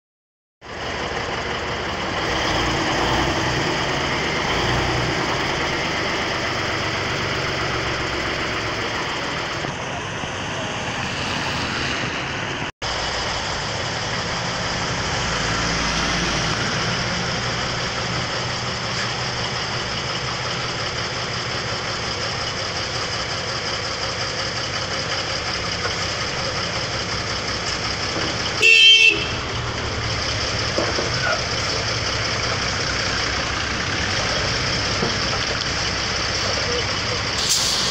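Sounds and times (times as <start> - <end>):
truck engine running: 0.6 - 37.9
vehicle horn toot: 28.6 - 29.5.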